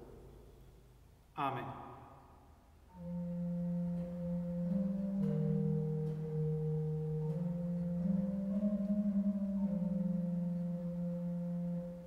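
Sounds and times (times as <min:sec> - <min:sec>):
pipe organ playing slow chords: 0:02.9 - 0:12.0.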